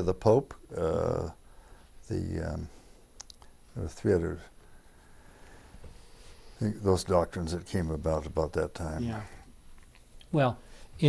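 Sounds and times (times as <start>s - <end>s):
man speaking: 0.0s - 1.4s, 2.1s - 2.8s, 3.8s - 4.5s, 6.6s - 9.4s.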